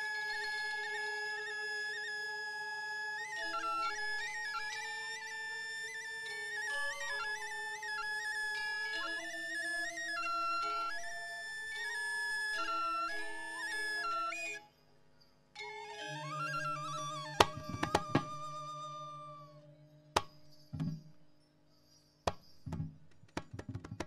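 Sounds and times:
bamboo flute melody: 0.0 - 14.7, 15.6 - 20.9
sharp percussive strikes: 17.2 - 18.7, 20.2 - 21.2, 22.3 - 24.0.

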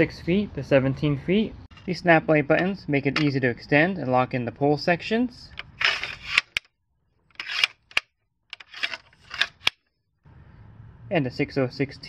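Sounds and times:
metal pole sections scraping: 5.5 - 6.6, 7.3 - 8.0, 8.6 - 9.8.

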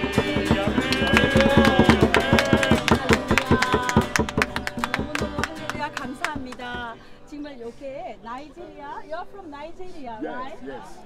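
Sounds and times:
group singing: 0.0 - 6.8
strummed acoustic guitars: 0.0 - 7.4
hands clapping: 0.1 - 6.9.

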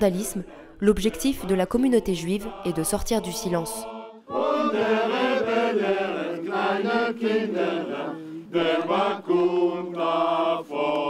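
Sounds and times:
choir singing slow song: 0.1 - 11.0.

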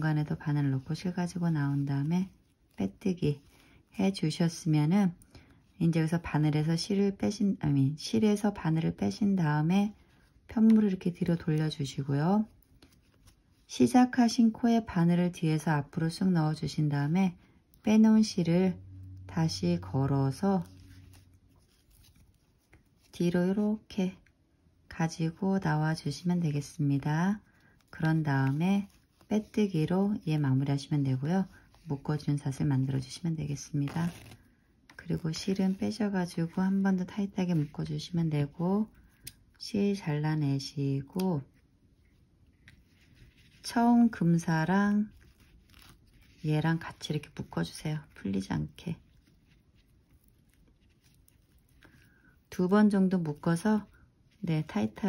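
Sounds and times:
crochet hook rustling yarn: 0.0 - 6.6, 7.6 - 14.6, 17.8 - 24.4, 25.1 - 55.0
soft ticks handling thread: 20.6 - 23.2, 41.4 - 43.7, 45.1 - 46.6, 49.0 - 54.4.

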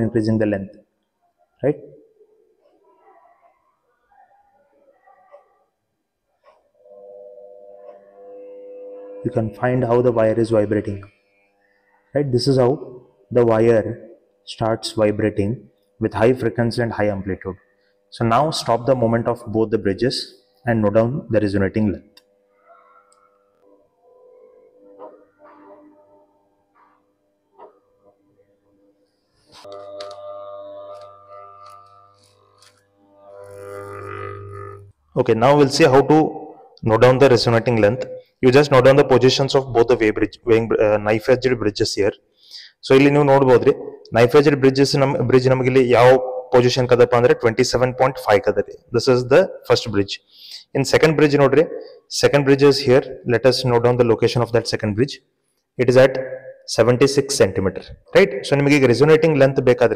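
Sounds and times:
wire buzzing hum: 5.4 - 42.2.

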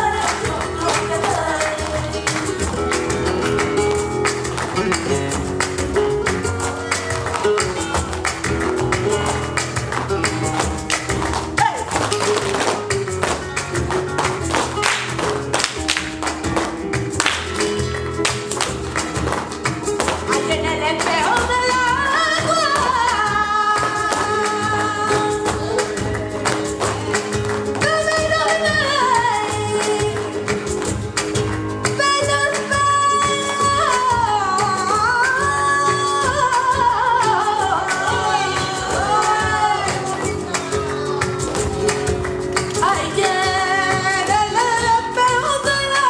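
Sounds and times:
person singing: 0.0 - 5.4, 20.0 - 31.0, 31.8 - 46.0
flamenco guitar: 0.0 - 46.0
rhythmic percussive strikes: 0.0 - 46.0.

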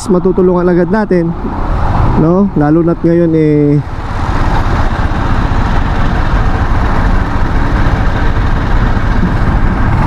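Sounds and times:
city traffic: 0.0 - 10.0
wind buffeting microphone: 0.8 - 10.0.

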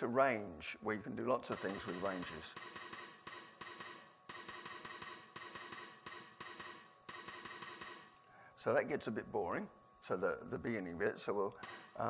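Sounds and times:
synthesized hi-hat and side-stick rhythm: 1.5 - 8.1.

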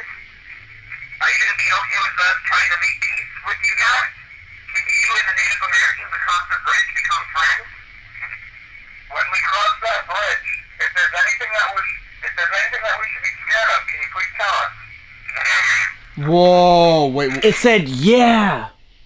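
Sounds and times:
tinny recorded speech playback: 1.2 - 8.4, 9.1 - 18.7.

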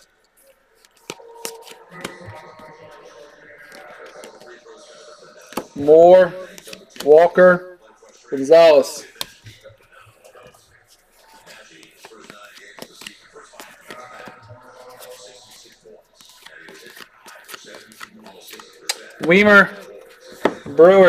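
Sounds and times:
trading cards sliding and clicking: 0.8 - 2.7, 10.9 - 21.0.

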